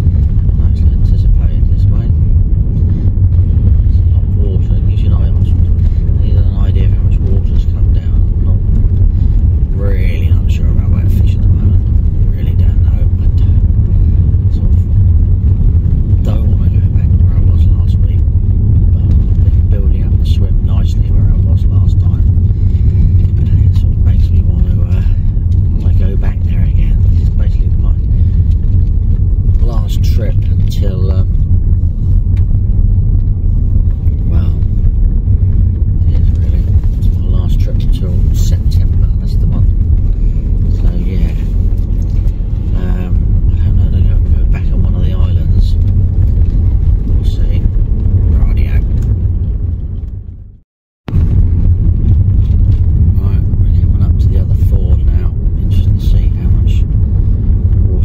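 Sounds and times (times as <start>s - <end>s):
car engine rumble: 0.0s - 58.0s
road noise: 0.0s - 58.0s.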